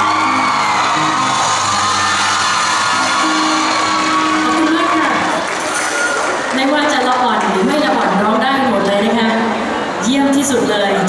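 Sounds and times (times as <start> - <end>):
live band playing: 0.0 - 6.6
audience cheering and whooping: 0.0 - 7.1.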